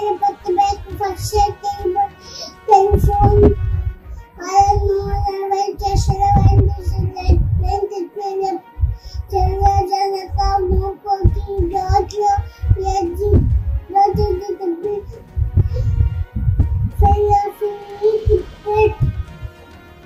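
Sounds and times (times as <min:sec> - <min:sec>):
girl chanting in sing-song voice: 0:00.0 - 0:03.8, 0:04.4 - 0:08.6, 0:09.3 - 0:16.1, 0:16.9 - 0:19.2.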